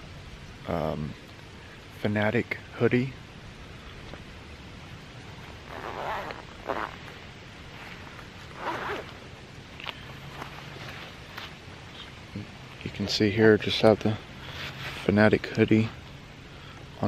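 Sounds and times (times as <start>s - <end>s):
jacket zipper pulled open: 5.7s - 7.0s, 8.5s - 9.2s.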